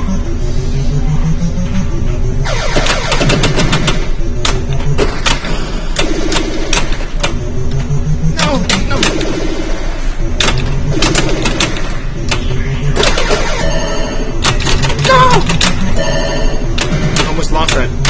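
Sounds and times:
electronic sound effects: 0:00.0 - 0:17.9.

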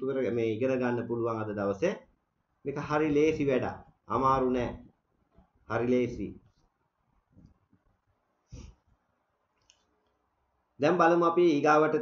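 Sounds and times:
man speaking: 0:00.0 - 0:04.9, 0:05.7 - 0:06.5, 0:10.8 - 0:12.0.

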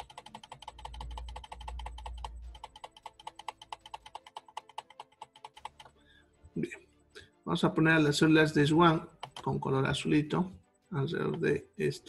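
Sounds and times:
rapid computer mouse clicking: 0:00.0 - 0:06.0, 0:08.9 - 0:09.7.

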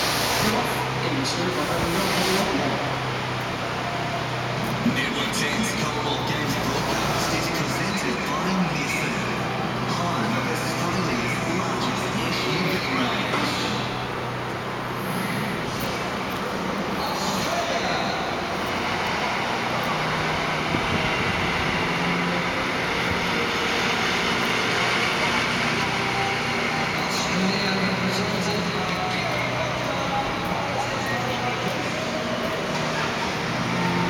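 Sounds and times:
indistinct voices: 0:00.0 - 0:34.0
traffic rumble: 0:00.0 - 0:34.0.

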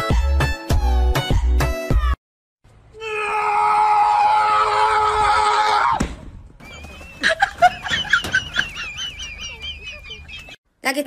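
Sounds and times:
long high-pitched scream: 0:03.0 - 0:06.0.

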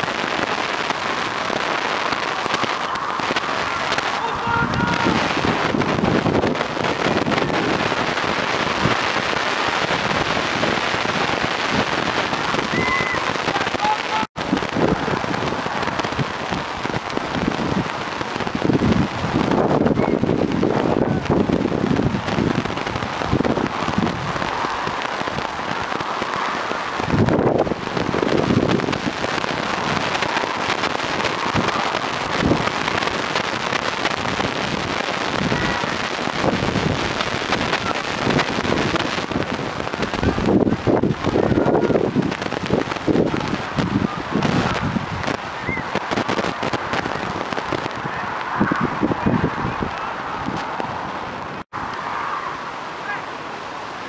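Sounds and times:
wind buffeting microphone: 0:00.0 - 0:52.1
faint distant shouts: 0:02.0 - 0:05.4.

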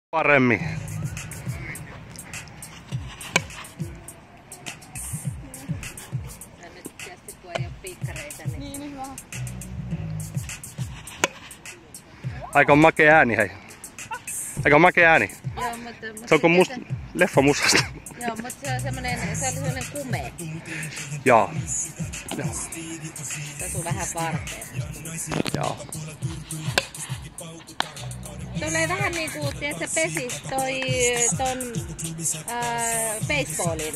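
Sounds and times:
music with steady beat: 0:00.7 - 0:33.9
bat hitting ball: 0:03.2 - 0:03.8, 0:11.2 - 0:11.8, 0:26.7 - 0:27.0, 0:27.8 - 0:28.1.

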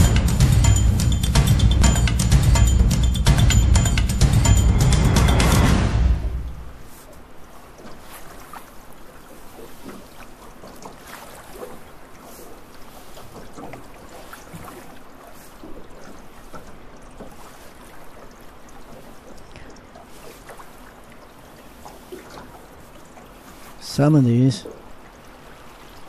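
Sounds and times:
muffled underwater river wash: 0:04.5 - 0:26.0
faint underwater clicks: 0:07.1 - 0:23.8.

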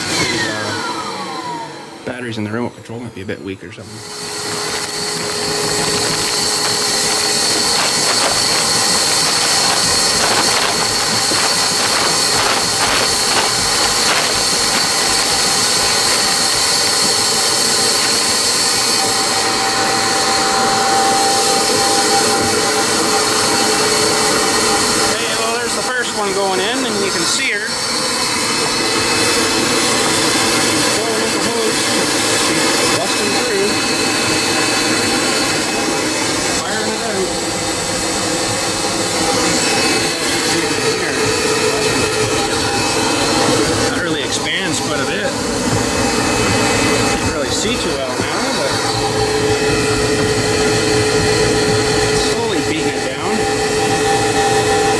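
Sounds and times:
insulation blowing machine whirring: 0:00.0 - 0:54.9.

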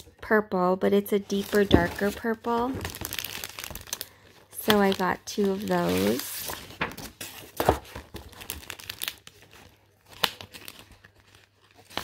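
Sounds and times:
paper rustling and crinkling: 0:01.2 - 0:12.0.

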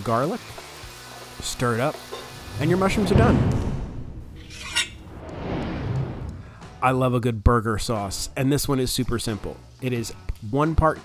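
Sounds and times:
whoosh transition: 0:04.2 - 0:06.7.

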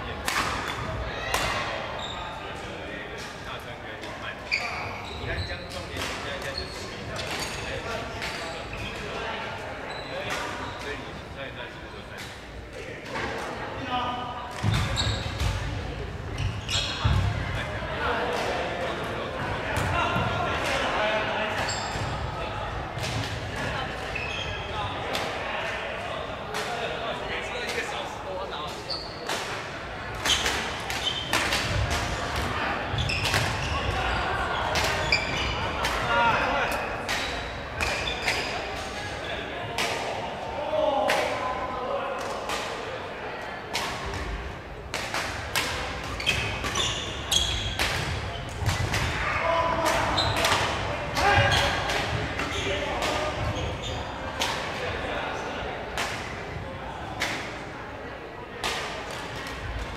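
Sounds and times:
voices chattering: 0:00.0 - 0:59.9
sneakers squeaking on wooden floor: 0:02.0 - 0:02.3, 0:04.5 - 0:05.7, 0:09.9 - 0:10.8, 0:14.6 - 0:15.5, 0:16.3 - 0:17.3, 0:21.7 - 0:22.1, 0:24.1 - 0:24.8, 0:28.9 - 0:29.2, 0:30.3 - 0:31.4, 0:32.9 - 0:34.0, 0:35.0 - 0:35.6, 0:46.1 - 0:48.8, 0:50.1 - 0:50.5.

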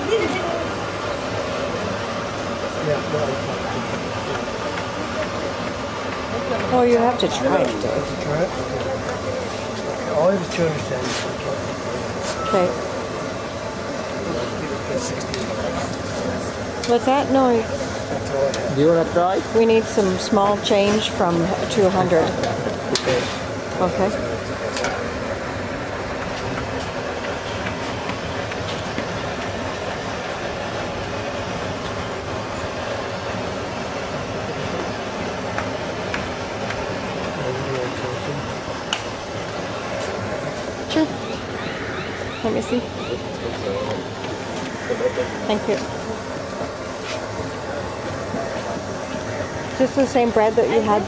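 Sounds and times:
steady background noise: 0:00.0 - 0:51.0
indistinct voices: 0:36.3 - 0:51.0.

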